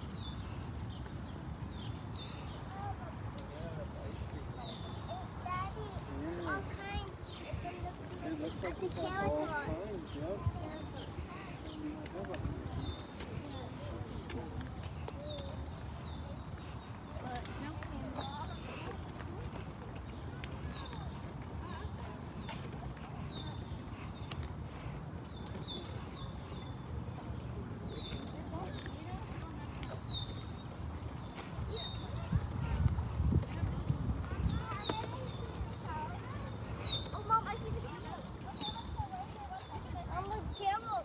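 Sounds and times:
stroller wheels rolling on gravel: 0.0s - 41.0s.

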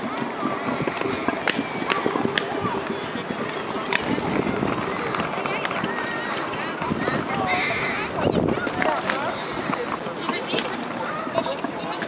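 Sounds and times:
crowd chatter: 0.0s - 12.0s
sharp clicks and knocks: 0.1s - 4.1s.

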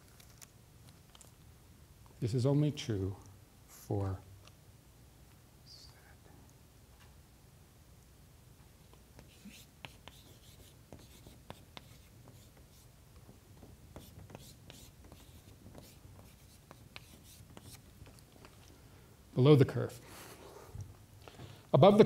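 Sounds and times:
chalk writing on blackboard: 9.2s - 17.9s.

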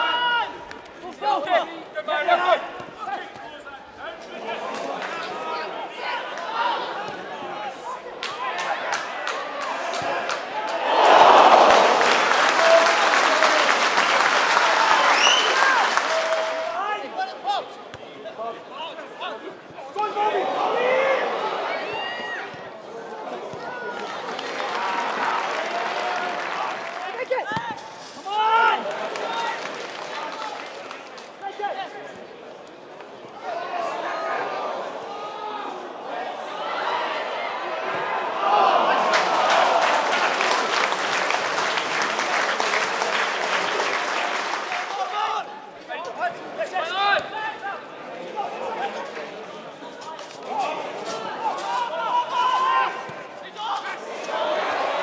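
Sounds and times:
small crowd noise: 0.0s - 55.0s.

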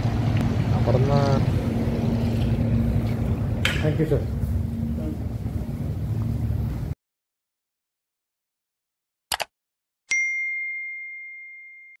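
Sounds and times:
notification bell ding: 10.1s - 12.0s.

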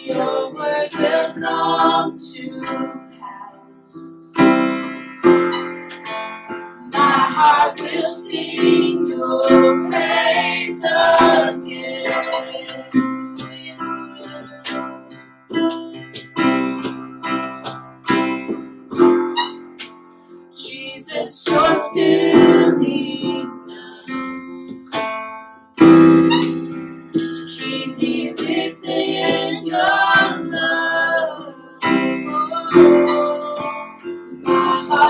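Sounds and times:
piano chords: 0.0s - 35.0s
acoustic guitar chords: 4.2s - 20.5s, 21.5s - 35.0s.

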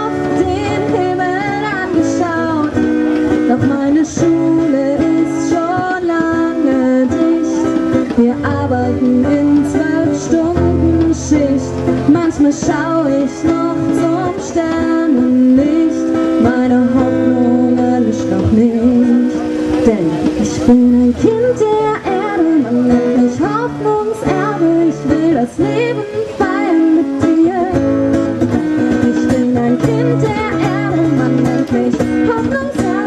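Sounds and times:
acoustic guitar strumming: 0.0s - 33.0s
woman singing: 0.0s - 33.0s.

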